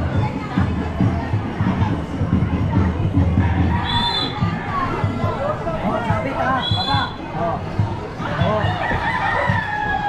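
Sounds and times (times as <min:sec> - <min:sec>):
street crowd chatter: 0:00.0 - 0:10.0
rooster crowing: 0:08.6 - 0:10.0.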